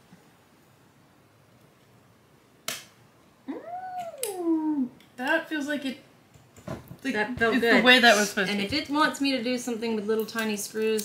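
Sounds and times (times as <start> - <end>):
sharp click of module snapping: 2.6 - 3.0.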